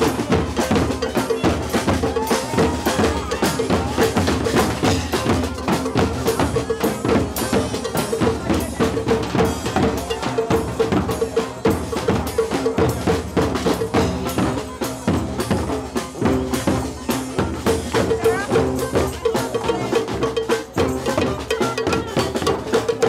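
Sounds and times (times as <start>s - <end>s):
bass drum with cymbal: 0.0s - 23.0s
snare drums: 0.0s - 23.0s.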